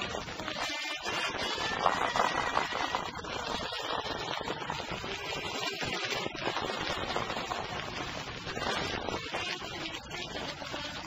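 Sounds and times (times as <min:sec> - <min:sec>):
vinyl hiss and crackle: 0:00.0 - 0:11.0.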